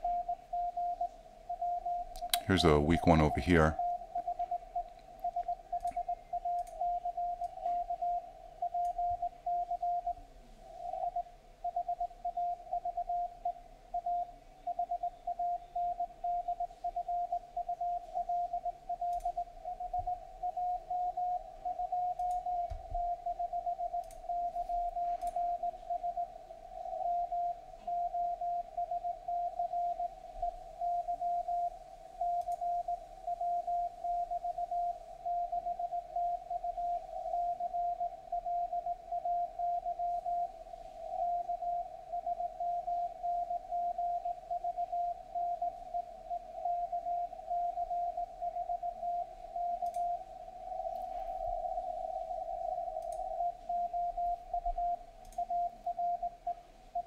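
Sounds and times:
morse code tone: 1.6s - 10.2s.

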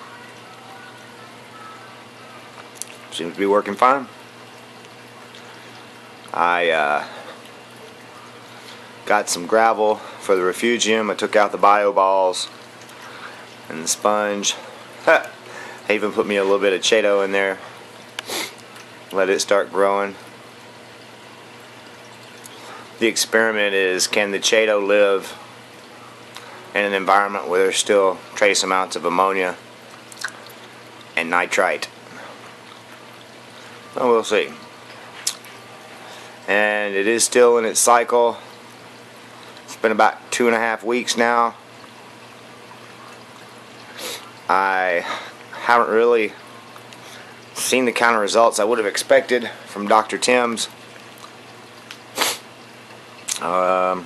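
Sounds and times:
water pouring and splashing: 0.0s - 54.0s.

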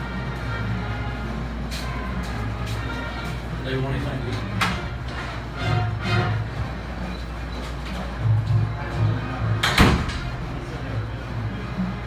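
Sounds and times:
marching band playing: 0.0s - 7.1s.

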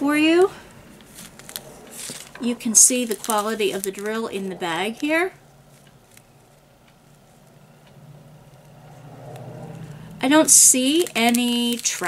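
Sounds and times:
low steady hum: 0.0s - 12.0s
plastic bag ticks: 2.2s - 4.2s, 10.4s - 12.0s.

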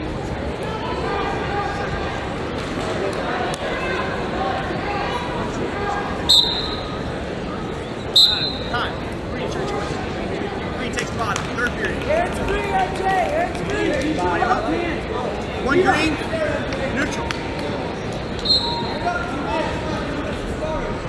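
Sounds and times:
crowd chatter: 0.0s - 21.0s.

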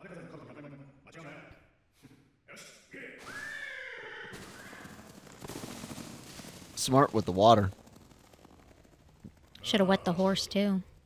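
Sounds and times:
horse whinnying: 3.2s - 5.0s.

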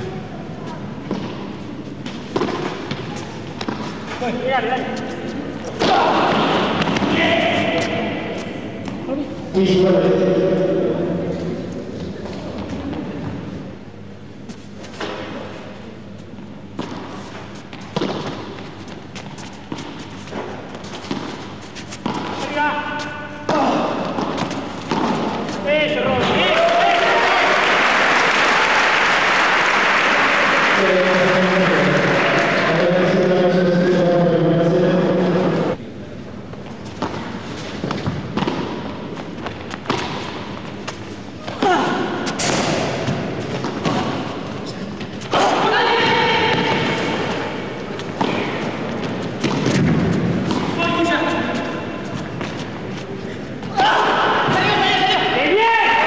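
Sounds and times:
ball thudding off rackets and walls: 23.4s - 25.6s.

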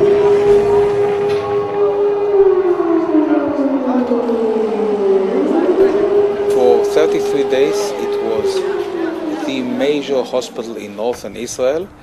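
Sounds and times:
air-raid siren wailing: 0.0s - 11.8s.

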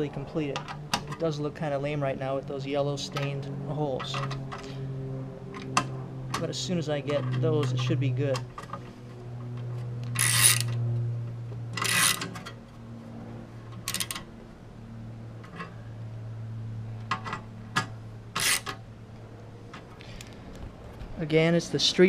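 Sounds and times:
steady low hum: 0.0s - 22.0s
ratchet screwdriver clicking: 10.1s - 10.7s, 11.8s - 12.3s.

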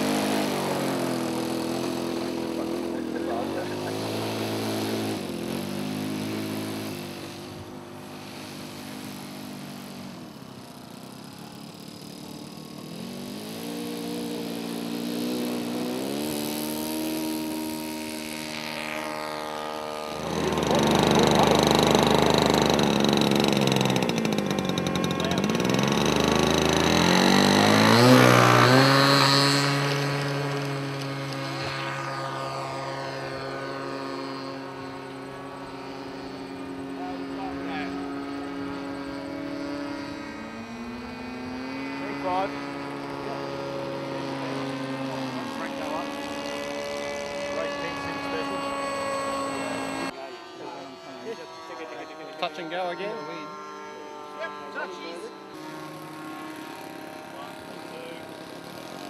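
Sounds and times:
model plane engine running: 0.0s - 59.0s.

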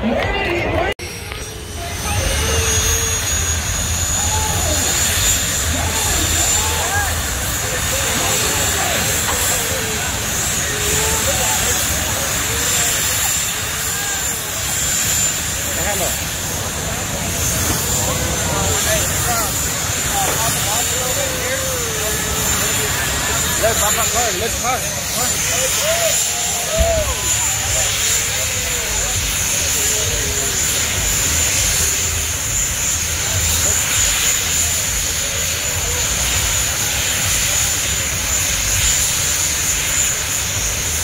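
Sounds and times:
crowd chatter: 0.0s - 41.0s
engine roar with high whine: 0.0s - 41.0s.

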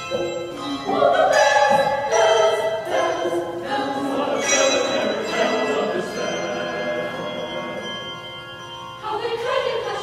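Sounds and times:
mixed choir singing: 0.0s - 8.2s, 9.0s - 10.0s
handbells ringing: 0.0s - 10.0s.

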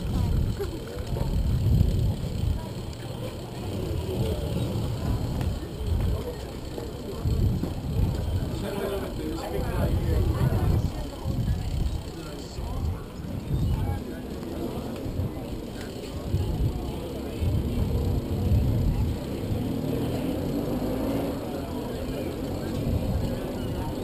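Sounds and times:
wind buffeting microphone: 0.0s - 2.8s, 7.1s - 19.6s
faint voices: 0.0s - 24.0s.

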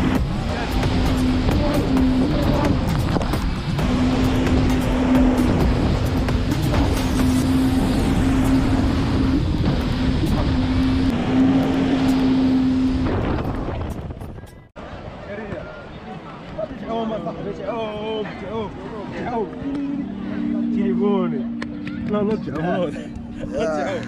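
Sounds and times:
jet ski engine running: 0.0s - 14.3s, 18.6s - 24.0s
rushing water and spray: 0.0s - 20.8s.

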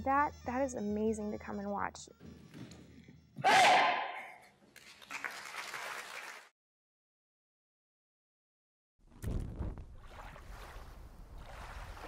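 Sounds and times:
audience applause and cheering: 4.8s - 6.5s.

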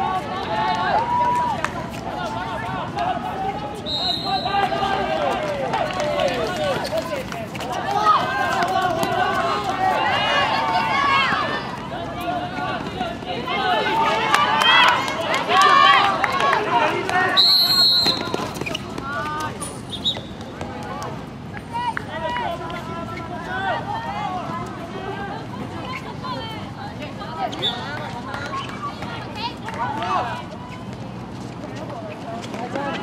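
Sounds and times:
crowd shouting and cheering: 0.0s - 31.0s
referee's whistle: 3.8s - 4.7s, 17.4s - 18.8s, 19.6s - 20.4s, 27.5s - 27.9s.

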